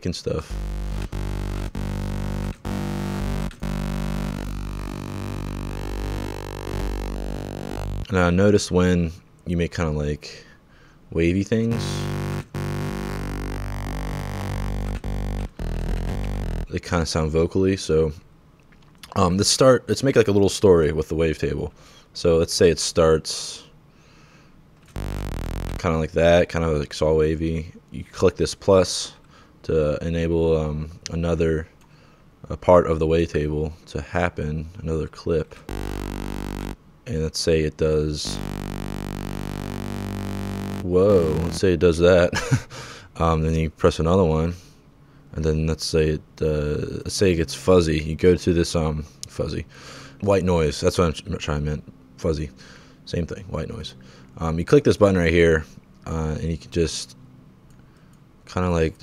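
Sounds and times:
buzzy synthesizer bass note: 0.0 - 8.1, 11.7 - 16.8, 25.0 - 25.9, 35.7 - 36.8, 38.2 - 41.7.

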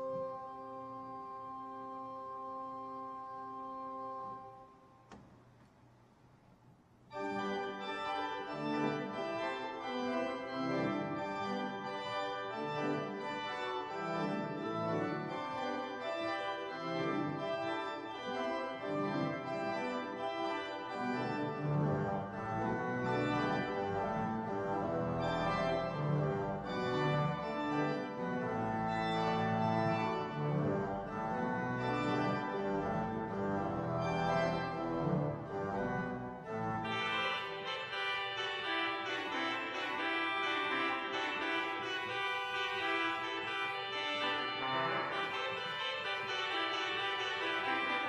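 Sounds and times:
church organ playing chords: 0.0 - 5.1, 7.1 - 48.0.

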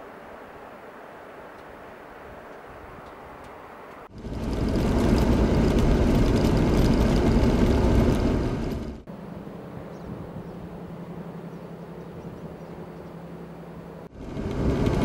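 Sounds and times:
vehicle rumbling on gravel: 4.0 - 9.3, 10.8 - 15.0.

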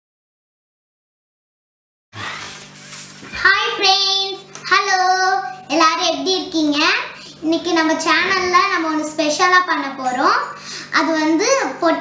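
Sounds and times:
girl singing: 3.4 - 12.0.

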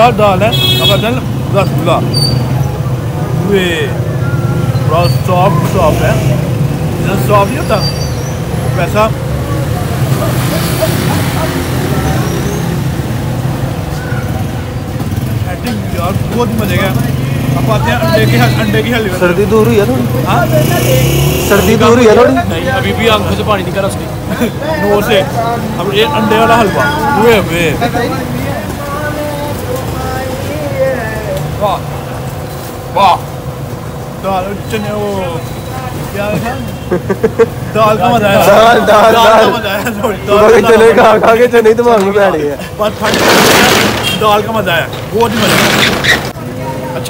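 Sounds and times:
traffic engine rumble: 0.0 - 47.0
people talking: 15.4 - 31.9, 34.2 - 45.7.

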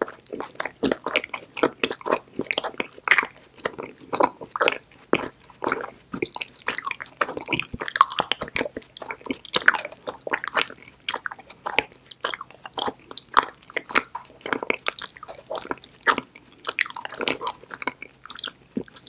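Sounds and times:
chewing chocolate: 0.0 - 19.0.

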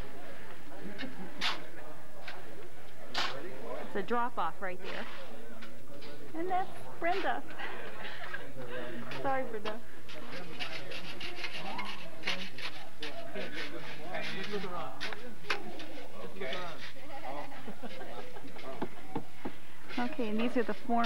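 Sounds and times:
workers talking: 0.0 - 21.0.

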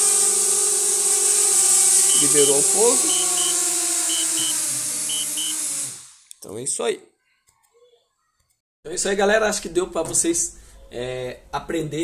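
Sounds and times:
drone propellers whining: 0.0 - 6.0
short alert beeps: 2.1 - 5.6.

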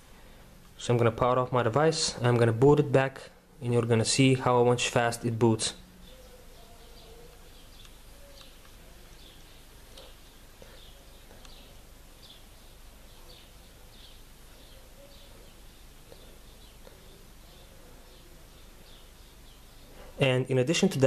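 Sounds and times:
faint high bird chirps: 5.9 - 20.0.

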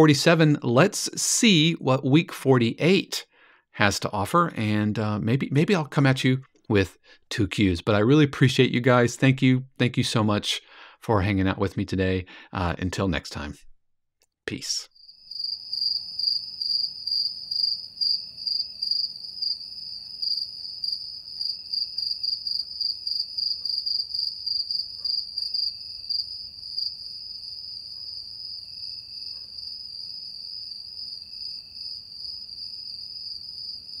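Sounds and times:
crickets chirping: 14.9 - 34.0.

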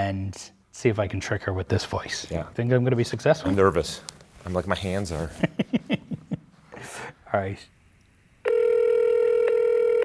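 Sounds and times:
phone ringback tone: 8.4 - 10.0.

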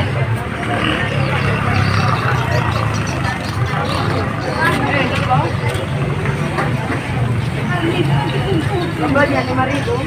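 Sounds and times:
crowd chatter: 0.0 - 10.0
motorbike and car engines running: 0.0 - 10.0
people talking: 0.0 - 10.0.

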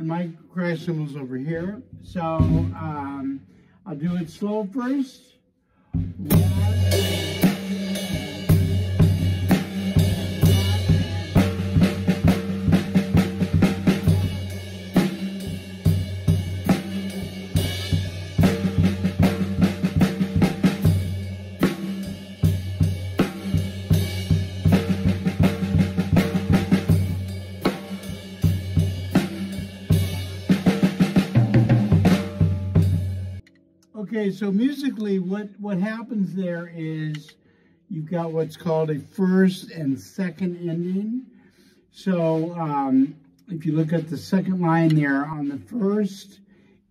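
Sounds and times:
drum kit playing slowly: 0.9 - 4.5, 6.0 - 37.4, 38.0 - 41.2, 42.0 - 45.8.

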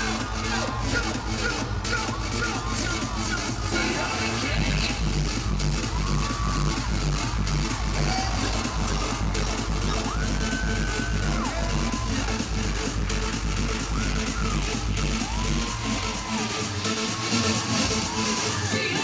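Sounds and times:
heavy electronic bass beat: 0.0 - 19.0
loud concert pop music: 0.0 - 19.0.

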